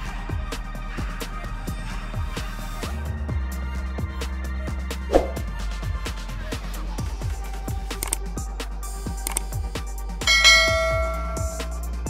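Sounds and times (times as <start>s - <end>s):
electronic music with kick drum: 5.3s - 12.0s
bright bell chime: 10.3s - 11.9s.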